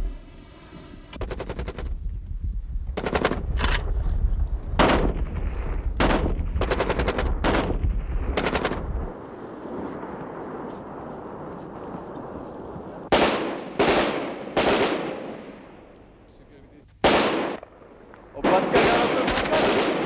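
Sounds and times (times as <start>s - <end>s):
low rumble: 0.0s - 13.1s
machine-gun fire: 1.2s - 2.0s, 3.0s - 3.8s, 4.8s - 9.1s, 13.1s - 15.8s, 17.0s - 17.8s, 18.4s - 20.0s
loud gunshots: 3.0s - 3.5s, 4.8s - 9.1s, 13.1s - 15.8s, 17.0s - 17.8s, 18.4s - 20.0s.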